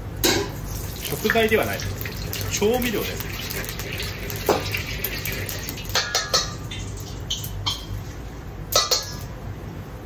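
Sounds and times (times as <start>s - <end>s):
gas burner hum: 0.0s - 10.0s
metal ladle clinking on wok: 5.9s - 7.9s, 8.7s - 9.3s.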